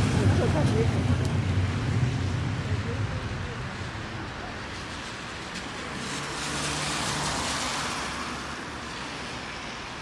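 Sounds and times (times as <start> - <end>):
tyres hissing on wet road: 0.0 - 10.0.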